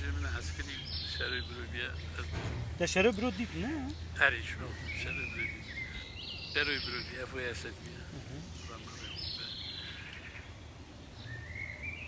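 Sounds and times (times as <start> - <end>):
bird whistling: 11.2 - 12.0.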